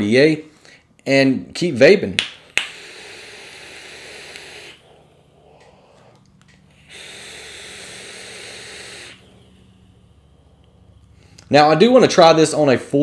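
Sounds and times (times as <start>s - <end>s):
air hissing through atomizer: 2.2s - 13.0s
breathy exhale: 2.7s - 11.5s.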